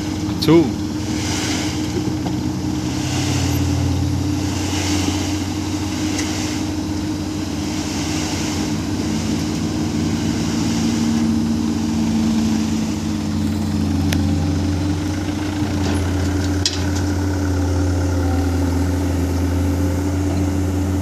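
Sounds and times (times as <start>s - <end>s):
diesel truck engine running: 0.0s - 21.0s.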